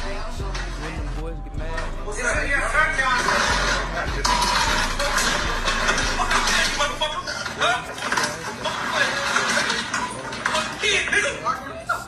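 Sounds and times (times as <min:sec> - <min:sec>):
music from smartphone: 0:00.0 - 0:12.0.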